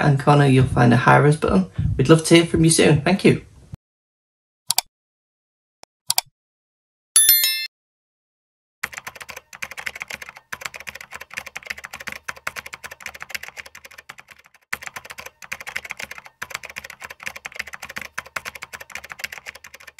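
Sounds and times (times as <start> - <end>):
fast typing on keyboard: 8.8 - 19.9.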